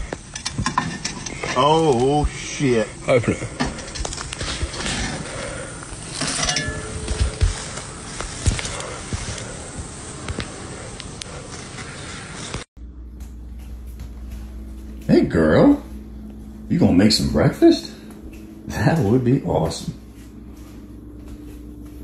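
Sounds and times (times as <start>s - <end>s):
low steady hum: 0.0s - 22.0s
outdoor noise: 0.0s - 22.0s.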